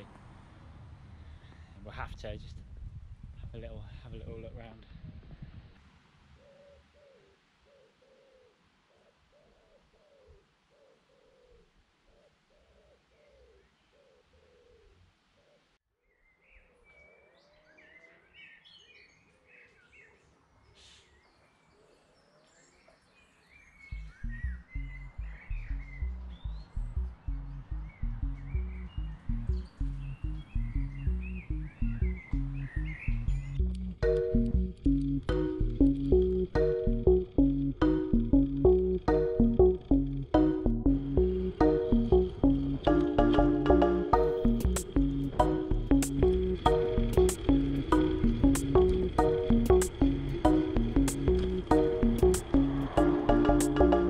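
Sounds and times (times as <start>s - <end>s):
bird low call: 6.3s - 23.1s
birds chirping and twittering: 6.3s - 54.0s
music with heavy steady beat: 34.4s - 54.0s.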